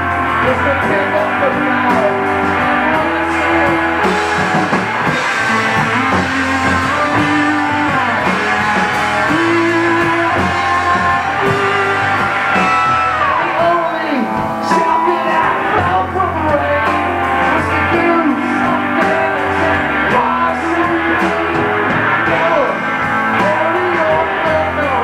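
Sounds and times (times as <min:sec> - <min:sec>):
drum kit: 0:00.0 - 0:25.0
electric bass: 0:00.0 - 0:25.0
electric guitars: 0:00.0 - 0:25.0
man singing: 0:00.0 - 0:25.0.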